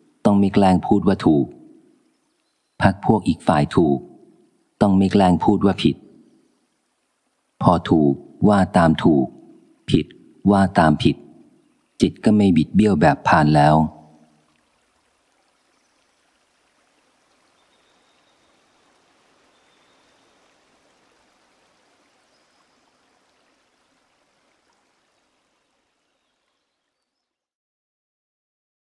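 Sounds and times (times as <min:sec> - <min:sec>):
faint even hiss: 0:00.0 - 0:27.3.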